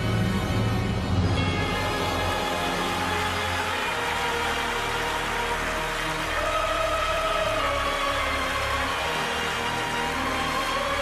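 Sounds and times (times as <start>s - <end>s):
slow soft orchestral music: 0.0s - 11.0s.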